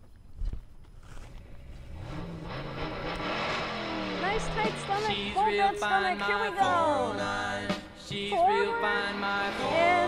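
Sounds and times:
car engine revving: 1.1 - 10.0.

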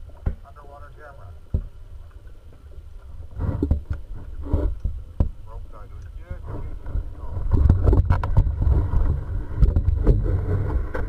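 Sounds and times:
underwater rumble of moving water: 0.0 - 11.0
small clicks and knocks: 1.5 - 10.3.

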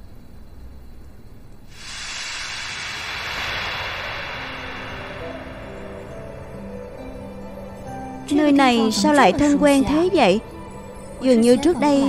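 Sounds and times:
transition hiss effect: 1.7 - 8.3
soft sustained music notes: 3.2 - 12.0.

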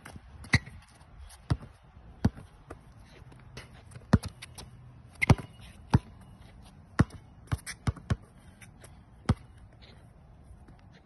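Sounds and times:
basketball bouncing on hard court: 1.5 - 2.9, 4.0 - 6.2, 7.0 - 8.3, 9.2 - 9.6.

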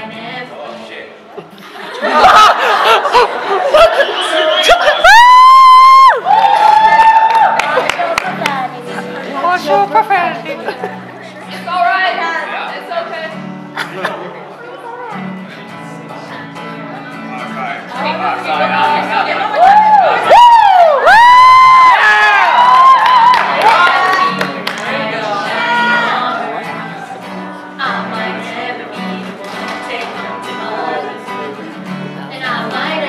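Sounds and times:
person whooping: 4.5 - 7.6, 19.6 - 23.8.

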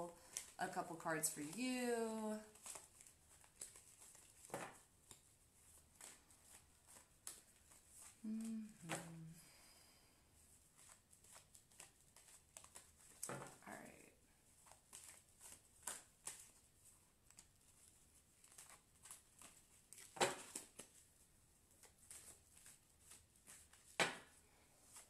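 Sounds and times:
cards being shuffled: 0.1 - 9.4, 10.4 - 13.7, 14.5 - 25.0
murmured voice: 8.2 - 9.4.

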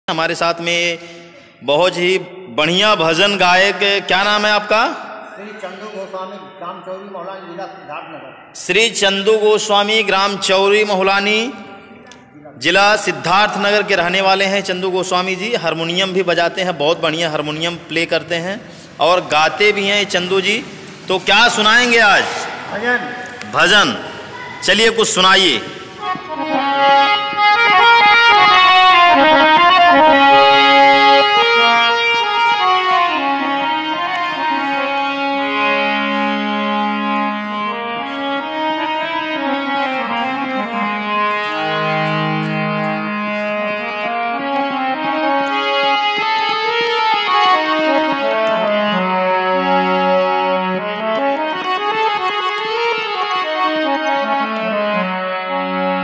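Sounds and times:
harmonium melody: 0.0 - 7.8, 8.4 - 56.0.

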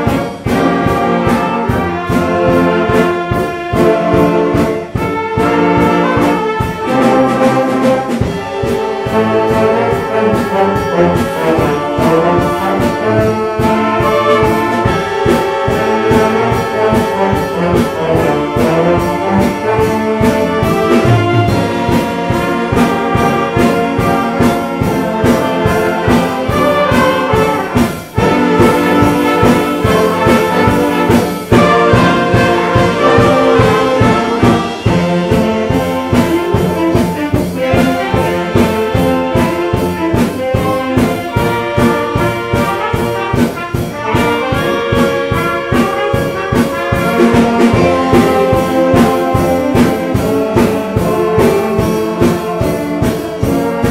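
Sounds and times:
band playing christmas song: 0.0 - 53.9
trombones and trumpets: 0.0 - 53.9.

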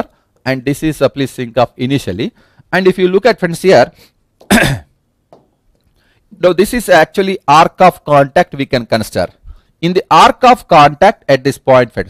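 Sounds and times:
man coughing: 4.4 - 5.0.

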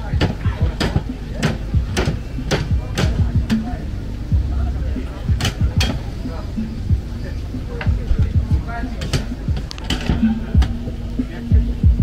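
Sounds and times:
music with thudding beat: 0.0 - 12.0.

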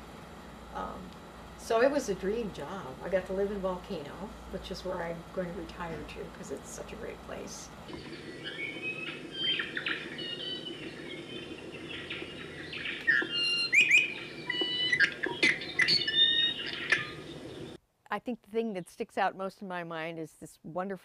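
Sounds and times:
birds chirping and whistling: 7.9 - 17.8.

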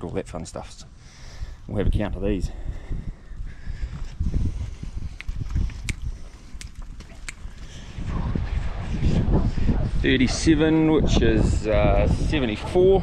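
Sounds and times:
sheep hooves pattering on dirt: 5.2 - 8.0.

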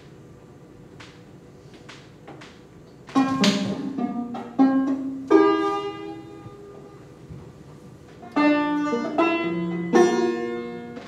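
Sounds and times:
banjo chord strummed: 3.2 - 7.0, 8.3 - 11.0.

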